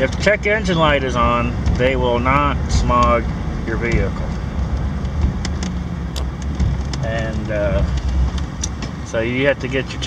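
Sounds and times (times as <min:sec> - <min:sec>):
in-cabin vehicle drone: 0:00.0 - 0:10.0.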